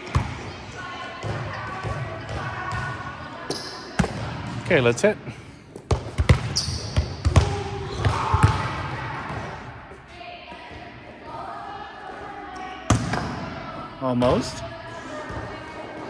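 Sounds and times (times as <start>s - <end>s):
volleyballs struck and bouncing: 0.0s - 4.7s, 5.7s - 11.0s, 12.6s - 14.6s.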